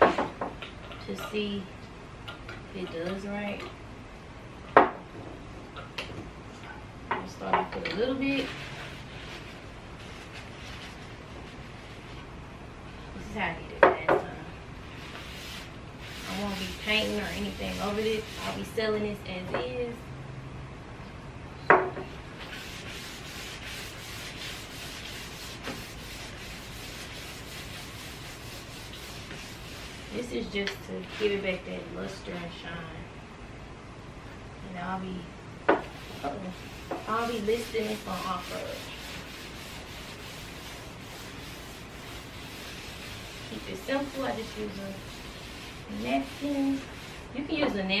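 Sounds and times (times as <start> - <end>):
napkin scrubbing wooden tabletop: 15.0 - 18.7, 22.4 - 30.5, 35.8 - 47.3.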